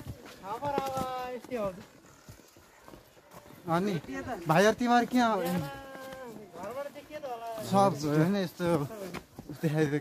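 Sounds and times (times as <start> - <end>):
footsteps on stone: 0.0 - 10.0.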